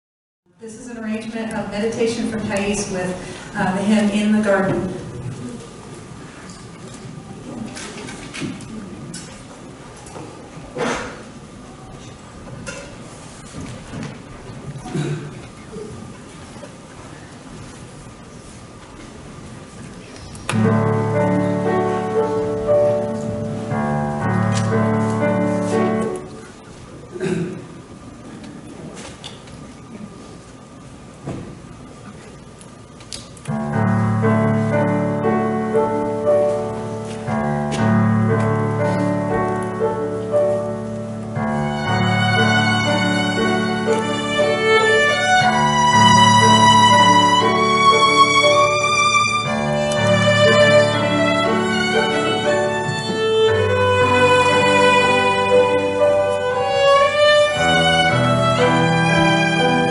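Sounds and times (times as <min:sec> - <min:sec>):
sheet music rustling: 0:00.8 - 0:27.1, 0:28.8 - 0:59.9
piano chords over low bass: 0:20.5 - 0:26.6, 0:33.5 - 0:59.9.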